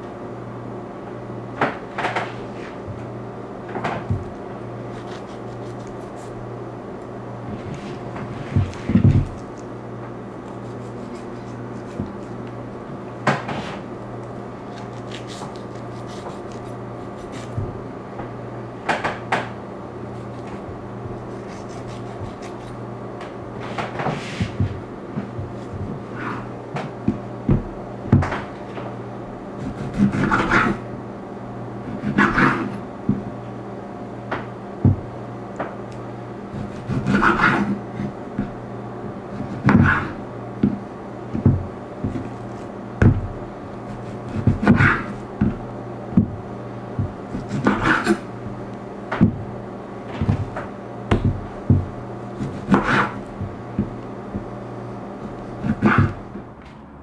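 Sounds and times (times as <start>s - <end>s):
steady low hum: 0.0s - 57.0s
knife cutting on wooden board: 4.8s - 6.4s, 10.4s - 12.5s, 14.6s - 17.7s, 21.2s - 22.8s, 29.6s - 30.8s, 31.9s - 32.8s, 36.5s - 38.5s, 39.3s - 40.8s, 43.9s - 45.6s, 47.3s - 48.3s, 52.3s - 54.5s, 55.2s - 56.3s
meat thumping on wooden board: 50.2s - 54.6s.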